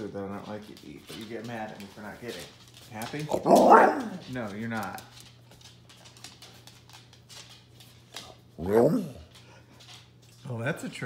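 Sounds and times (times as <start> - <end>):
dog claws clicking on hard floor: 0.0 - 11.0.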